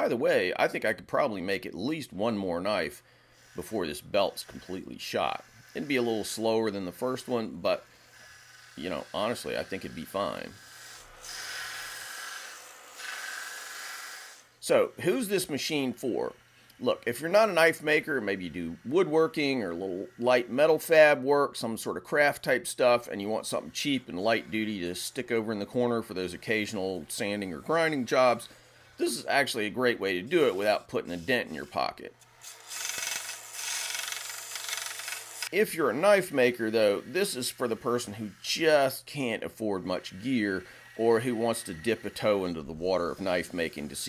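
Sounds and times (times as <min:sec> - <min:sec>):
belt grinder grinding knife blade: 0:03.4 - 0:21.2, 0:23.0 - 0:29.6, 0:30.4 - 0:44.0.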